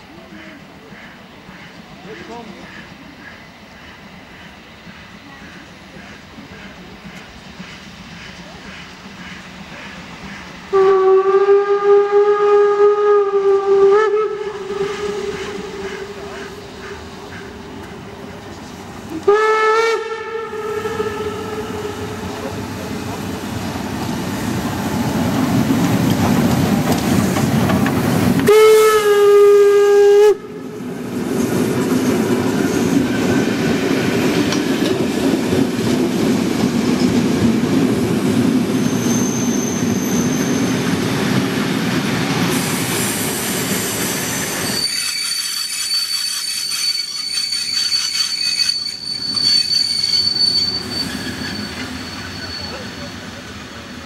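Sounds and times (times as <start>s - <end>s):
steam locomotive passing: 0.0s - 54.0s
train coaches rumbling: 0.0s - 54.0s
steam whistle blast: 10.7s - 16.2s, 19.2s - 22.3s, 28.4s - 30.6s
high wheel squeal: 32.0s - 33.8s, 38.7s - 41.2s, 42.5s - 53.8s.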